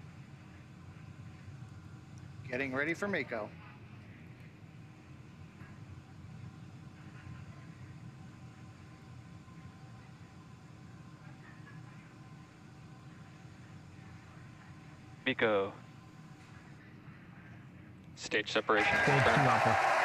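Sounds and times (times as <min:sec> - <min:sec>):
faint steady tones: 0:00.0 - 0:19.6
low rumble and hiss: 0:00.0 - 0:20.0.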